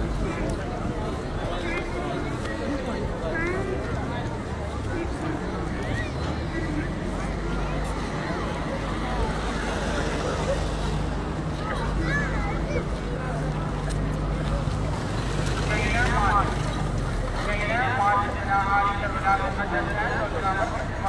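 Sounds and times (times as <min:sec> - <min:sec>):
crowd murmur: 0:00.0 - 0:21.0
people talking nearby: 0:00.0 - 0:21.0.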